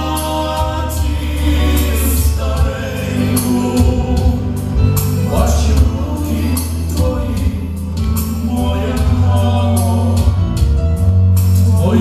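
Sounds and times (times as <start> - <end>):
group of voices singing: 0.0 - 10.7, 11.5 - 12.0
instrumental accompaniment with bass: 0.0 - 12.0.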